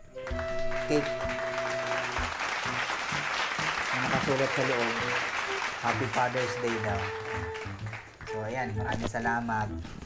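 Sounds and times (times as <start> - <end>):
background music with held notes: 0.0 - 10.0
applause: 0.2 - 8.6.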